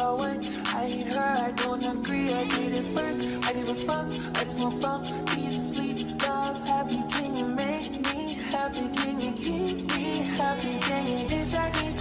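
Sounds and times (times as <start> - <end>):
music with steady beat: 0.0 - 12.0
deep bass line: 11.3 - 12.0.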